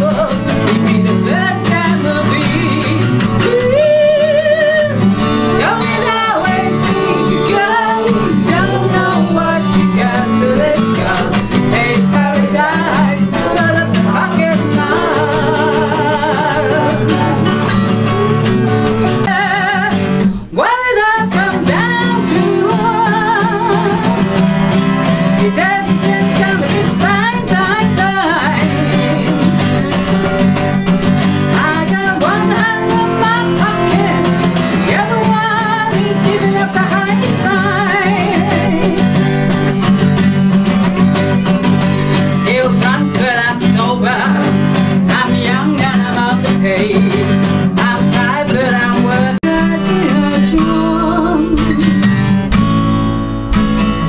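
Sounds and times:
woman singing: 0.0s - 52.4s
acoustic guitars: 0.0s - 54.0s.

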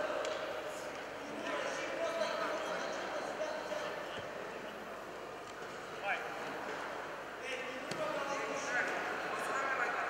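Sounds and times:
indistinct voices in a hall: 0.0s - 10.0s.

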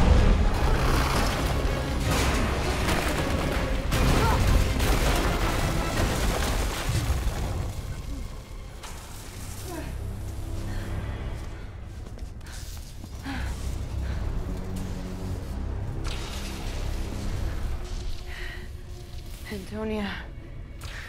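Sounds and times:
heavy booms and crashes: 0.0s - 7.9s
dramatic score music: 0.0s - 21.0s.

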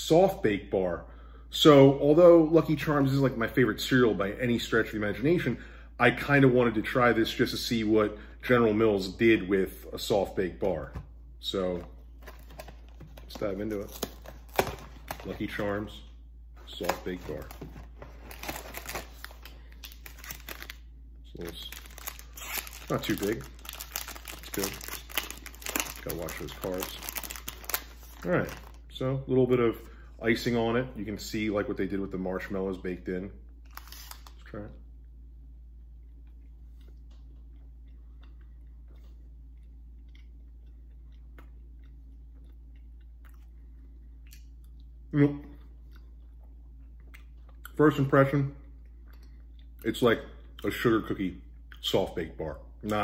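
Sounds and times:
steady low hum: 0.0s - 53.0s
plastic wrapper crinkling: 12.1s - 16.0s, 16.6s - 28.8s, 33.6s - 34.4s
faint chewing: 35.8s - 47.8s.

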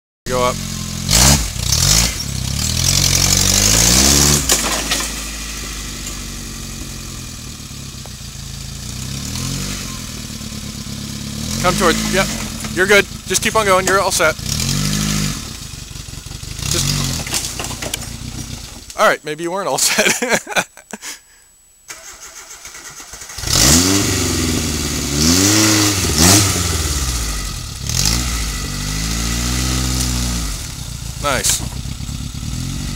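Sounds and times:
engine labouring under load: 0.3s - 19.0s, 21.9s - 32.9s.

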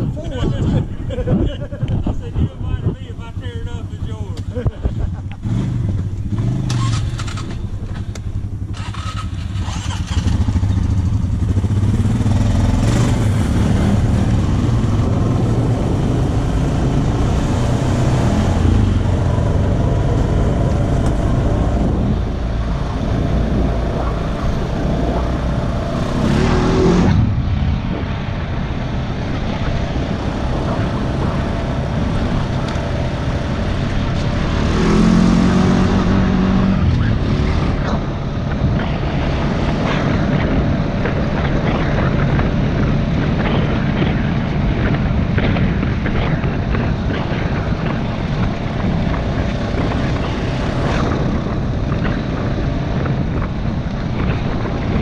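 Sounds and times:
atv engine running: 0.0s - 55.0s.

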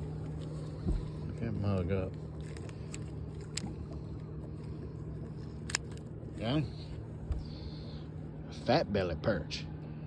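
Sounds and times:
low mechanical hum of boat machinery: 0.0s - 10.0s.

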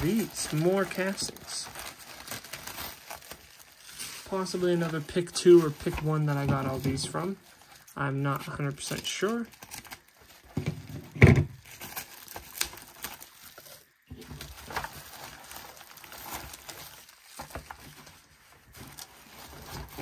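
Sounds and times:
bubble wrap crinkling: 0.0s - 20.0s.

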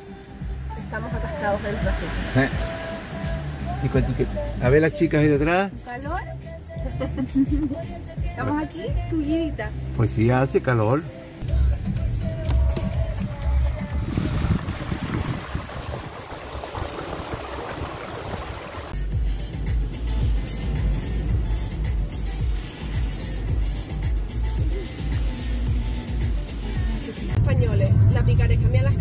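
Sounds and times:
music playing in a car: 0.0s - 15.1s, 18.9s - 29.0s
low road rumble: 0.0s - 29.0s
tyres spraying through water: 1.0s - 4.6s, 12.4s - 19.0s.

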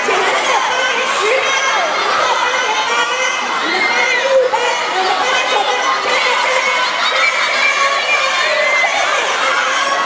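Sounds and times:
crowd of teenagers shouting cheering: 0.0s - 10.0s.

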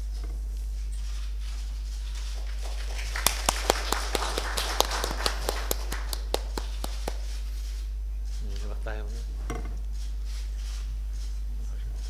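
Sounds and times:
light applause: 2.2s - 7.4s.

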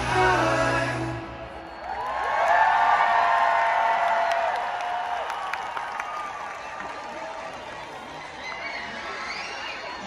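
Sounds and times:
crowd cheering: 1.2s - 10.0s.

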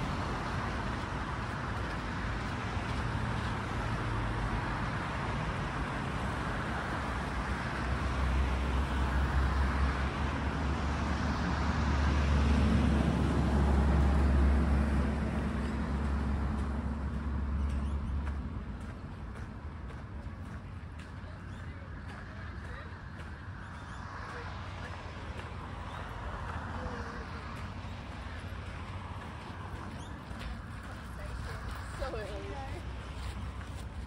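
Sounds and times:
road traffic passing: 0.0s - 34.0s
vehicle engine rumble: 0.0s - 34.0s.

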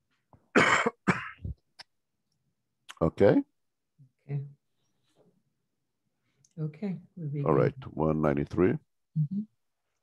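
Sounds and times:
person coughing: 0.5s - 1.6s.

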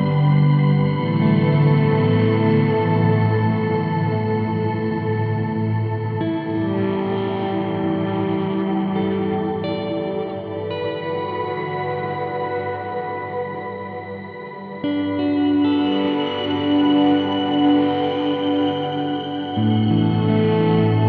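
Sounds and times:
ambient sustained chords: 0.0s - 21.0s.

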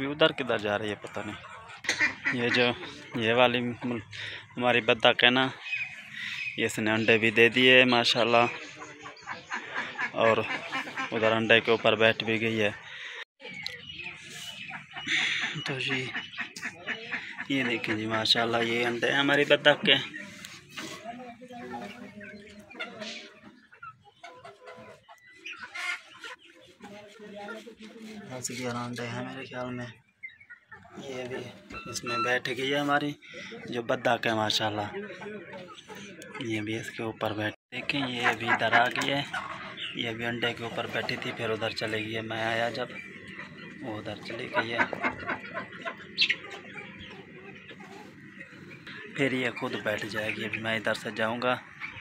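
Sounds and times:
ducks calling: 0.0s - 52.0s
faint coop background: 0.0s - 52.0s.

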